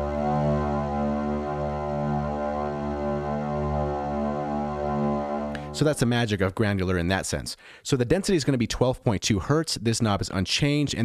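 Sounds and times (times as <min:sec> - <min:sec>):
low sustained cello-like note: 0:00.0 - 0:05.8.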